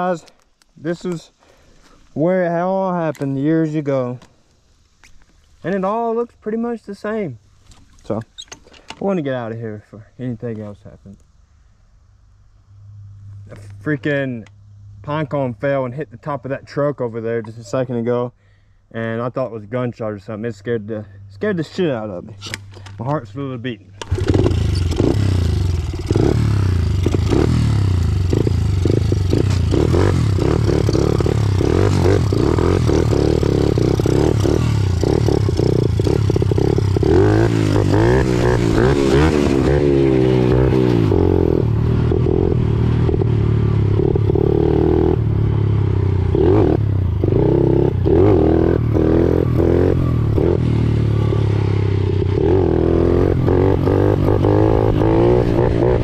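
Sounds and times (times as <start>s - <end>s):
small motorbike engine revving: 24.0s - 56.0s.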